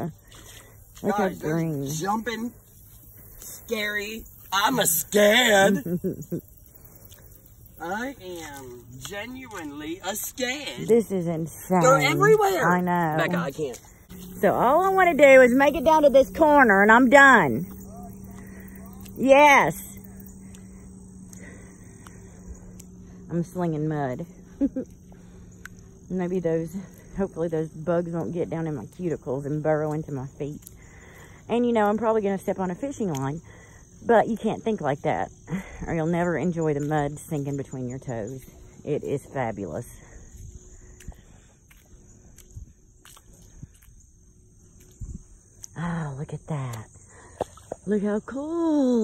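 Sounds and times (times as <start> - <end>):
bare footsteps in wet mud: 0.0 - 5.8, 7.0 - 23.7, 24.5 - 33.4, 39.2 - 45.9
high-pitched insect chorus: 0.0 - 49.0.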